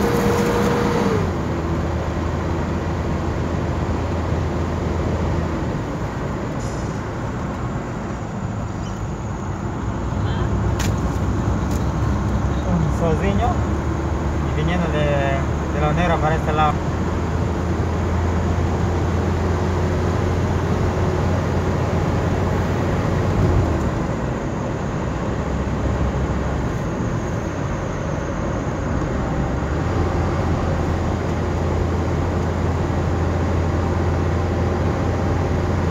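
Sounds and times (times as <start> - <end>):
car engine drone: 0.0 - 35.9
road and tyre noise: 0.0 - 35.9.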